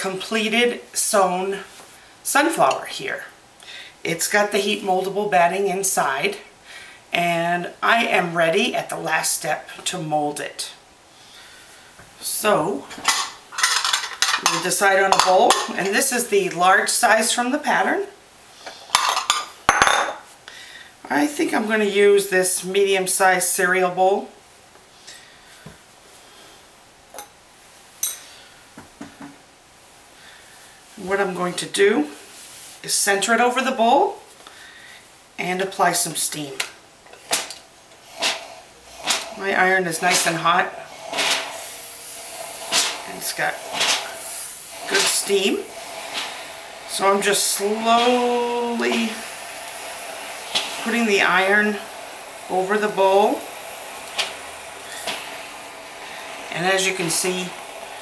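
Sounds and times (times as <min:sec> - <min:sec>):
steam iron hissing: 0:11.2 - 0:18.0, 0:36.0 - 0:58.0.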